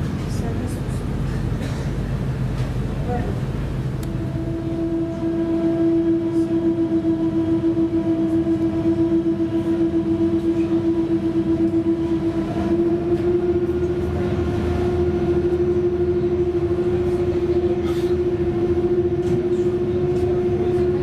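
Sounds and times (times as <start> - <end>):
ferry engines humming: 0.0 - 21.0.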